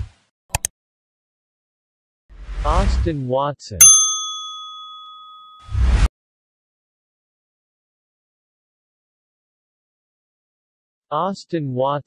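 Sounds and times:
bell chime: 3.8 - 5.7.

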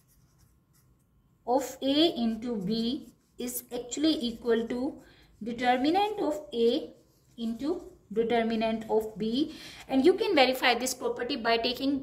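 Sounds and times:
pen scratching on paper: 0.0 - 9.1
woman speaking: 1.5 - 12.0.

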